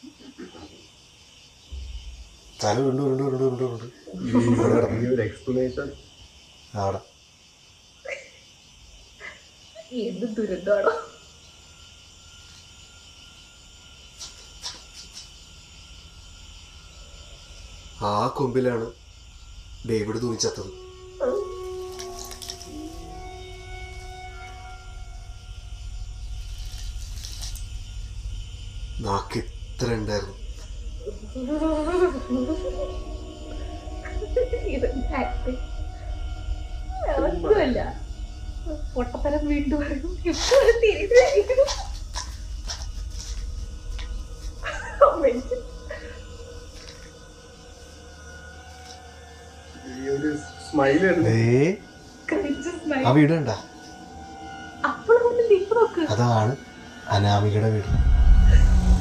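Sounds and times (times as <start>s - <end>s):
crickets chirping: 0.0s - 59.0s
voices: 2.6s - 6.0s, 6.7s - 7.1s, 9.2s - 11.2s, 18.0s - 19.0s, 19.8s - 23.2s, 29.0s - 30.4s, 31.0s - 36.2s, 36.9s - 42.2s, 44.6s - 46.3s, 49.7s - 53.8s, 54.8s - 58.7s
eerie music with held tones: 9.9s - 59.0s.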